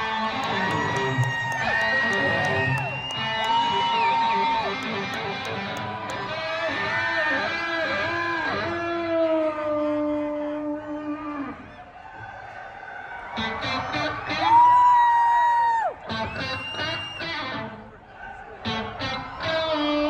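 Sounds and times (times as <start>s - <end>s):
electric guitar bending lead notes: 0.0s - 11.5s, 13.4s - 14.4s, 18.7s - 20.0s.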